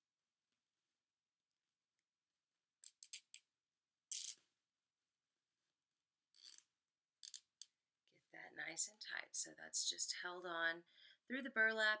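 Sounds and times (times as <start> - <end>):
zip tie being pulled tight: 4.1 - 4.5, 6.3 - 7.6.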